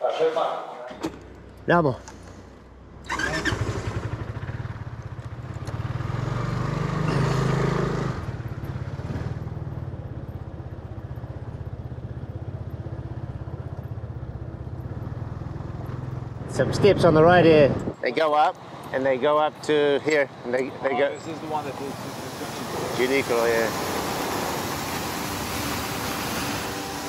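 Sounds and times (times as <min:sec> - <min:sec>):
scooter engine: 0:02.8 - 0:17.9, 0:20.8 - 0:27.0.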